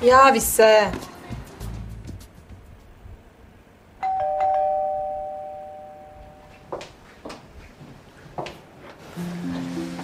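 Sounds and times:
two-tone doorbell chime: 4.0 - 6.6.

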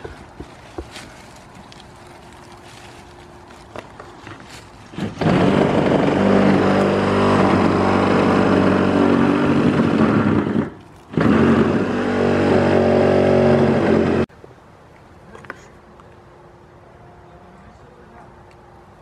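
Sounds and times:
loud motor drone: 5.0 - 14.3.

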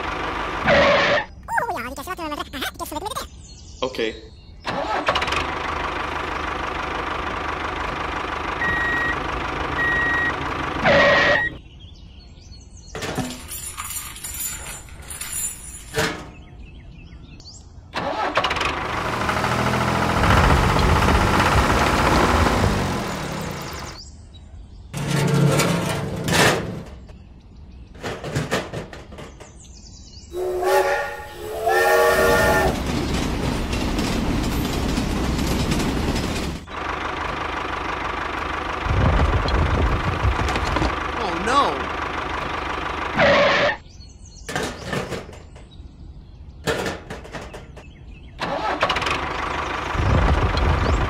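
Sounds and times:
engine running and revving: 4.7 - 11.6, 18.0 - 24.0, 36.6 - 43.8, 48.4 - 51.0
horn honking: 9.8 - 11.6, 30.4 - 32.8.

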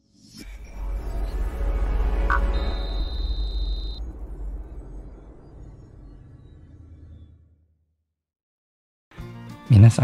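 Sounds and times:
deep bass rumble: 0.6 - 8.1.

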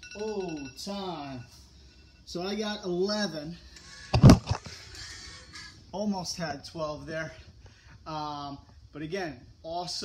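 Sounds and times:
camera handling thumps and rustling: 4.1 - 4.7.

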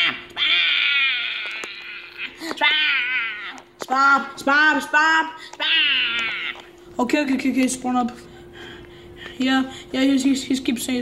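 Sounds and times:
high-pitched cartoon voice calling: 0.0 - 4.4, 5.0 - 6.7
faint steady hum: 0.0 - 11.0.

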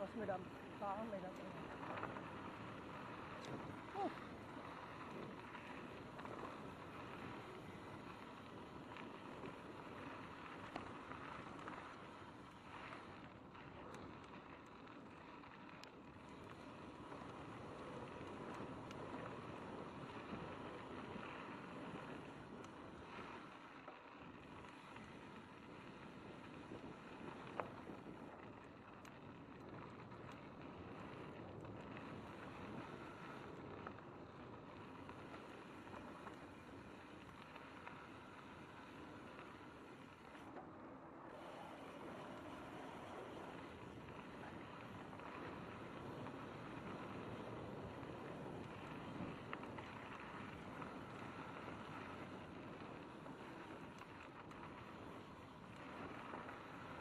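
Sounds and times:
tyre and wind noise: 0.0 - 57.0.

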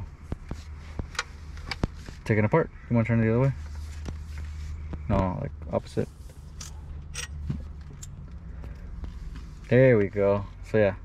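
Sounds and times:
low steady rumble: 0.0 - 11.0
metallic rattle: 6.4 - 8.4.

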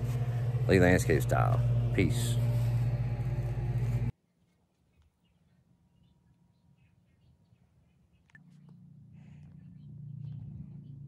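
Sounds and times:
low engine hum: 0.0 - 4.1, 8.4 - 11.0.

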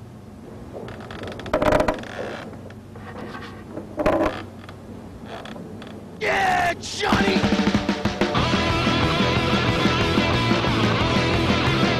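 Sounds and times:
mechanical creaks and clatter: 0.7 - 6.0
loud squealing creaks: 0.9 - 6.0.

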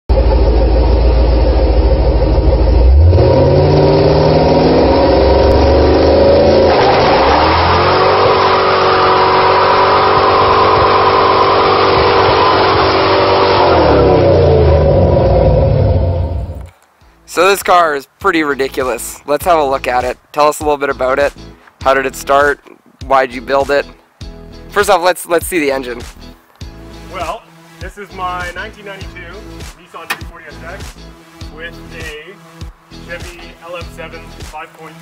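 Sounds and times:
car engine revving: 0.1 - 16.7
tyres spinning in a burnout: 0.2 - 16.6.

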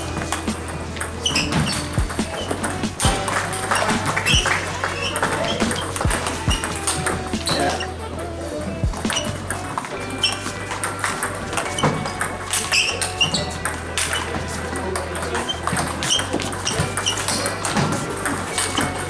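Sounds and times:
music playing: 0.0 - 19.0.

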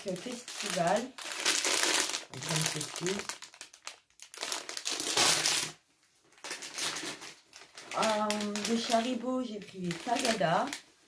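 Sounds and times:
plastic sweet packet crinkling: 0.0 - 10.9.

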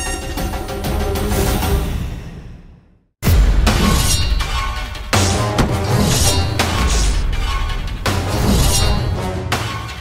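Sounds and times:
dramatic background music: 3.2 - 10.0.

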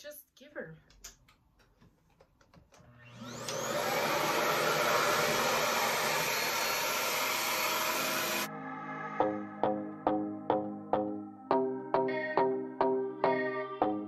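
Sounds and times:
hair dryer motor whining and rushing: 2.8 - 8.5
music: 8.5 - 14.0.

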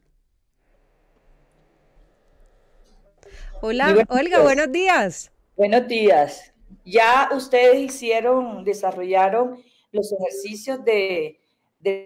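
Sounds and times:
faint steady hiss: 0.0 - 11.3.

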